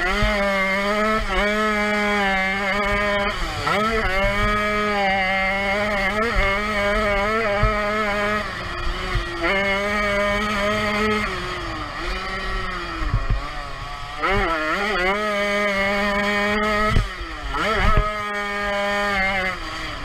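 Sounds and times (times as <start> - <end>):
two-stroke engine revving: 0.0 - 20.0.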